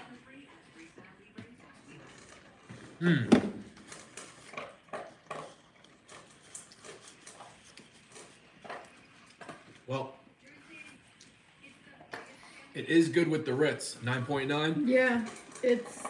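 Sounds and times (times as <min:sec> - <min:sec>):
chewing and lip smacks: 0:04.0 - 0:09.9.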